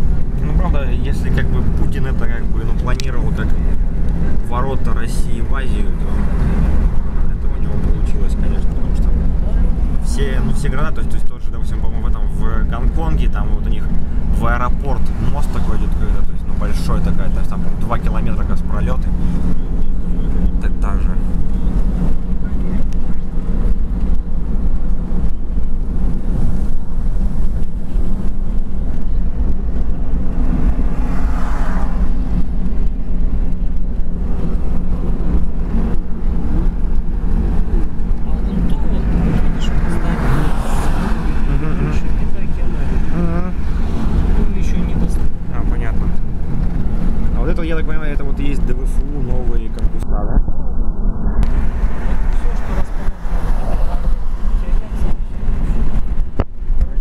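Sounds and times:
road and engine rumble in car: 0.0 - 57.0.

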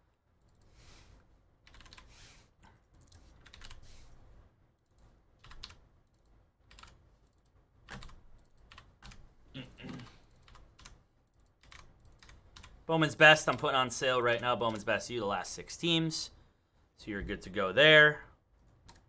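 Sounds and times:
computer keyboard typing: 1.6 - 3.9, 4.8 - 9.2, 9.9 - 12.8, 18.7 - 19.0.

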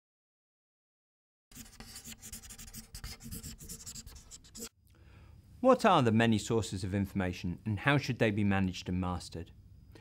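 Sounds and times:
marker pen writing: 1.5 - 4.7.

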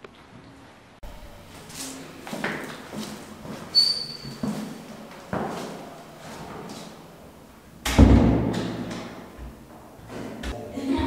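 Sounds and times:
interior door slamming: 7.8 - 9.2.

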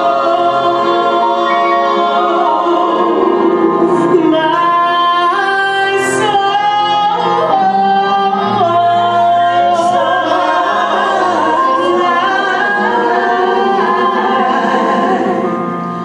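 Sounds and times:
backing singers: 0.0 - 5.7
keyboard accompaniment: 0.0 - 16.0.

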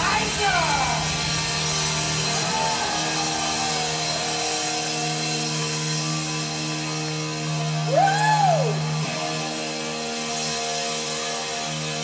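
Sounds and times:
electric guitar sustained notes: 0.0 - 12.0
live rock band: 0.0 - 12.0.

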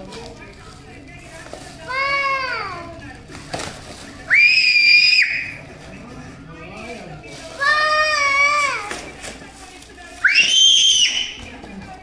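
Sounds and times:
foil gift wrap crinkling: 0.0 - 5.9, 6.6 - 12.0.

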